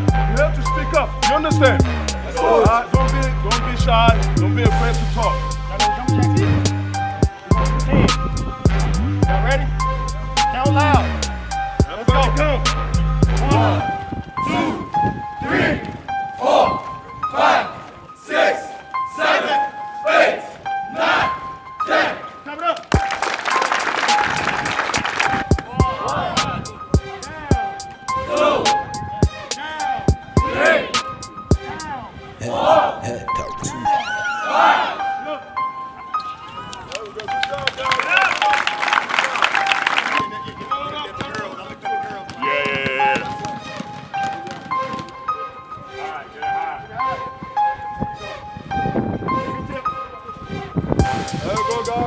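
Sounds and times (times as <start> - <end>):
background music: 0.0 - 52.0
music with sharp percussive beat: 22.9 - 31.6, 51.0 - 52.0
crowd shouting: 33.8 - 35.5.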